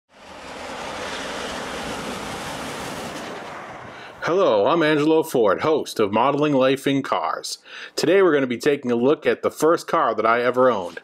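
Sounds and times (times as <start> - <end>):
steady rushing noise: 0.1 - 5.2.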